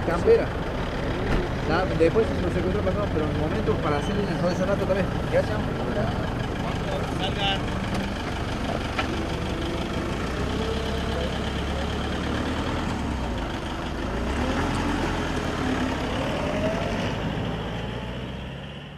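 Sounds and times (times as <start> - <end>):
diesel engine running: 0.0 - 18.9.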